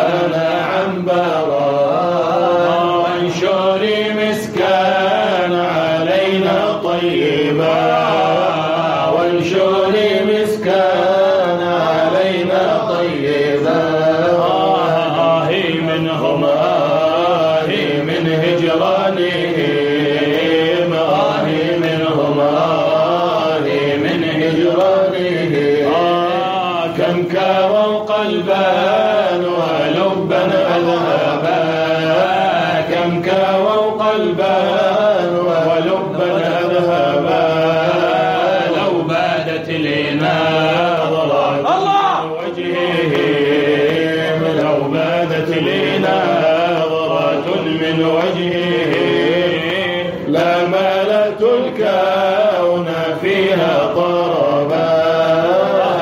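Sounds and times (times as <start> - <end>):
group singing unaccompanied chant: 0.0 - 56.0.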